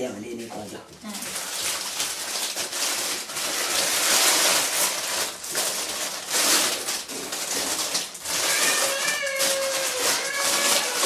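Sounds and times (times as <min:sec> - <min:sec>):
aluminium foil crinkling: 0:00.3 - 0:11.0.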